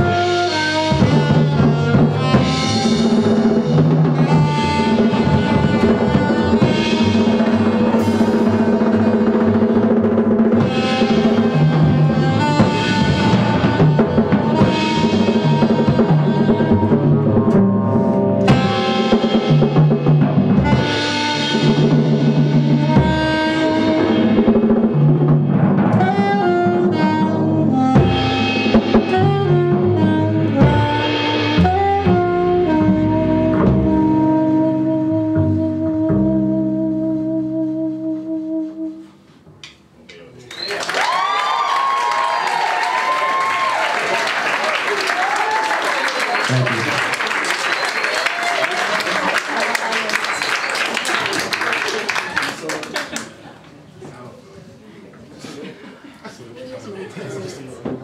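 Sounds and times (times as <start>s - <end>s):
alto saxophone melody: 0.0s - 25.1s, 25.8s - 39.5s
drum kit with cymbals: 0.0s - 36.7s
upright double bass: 0.0s - 39.6s.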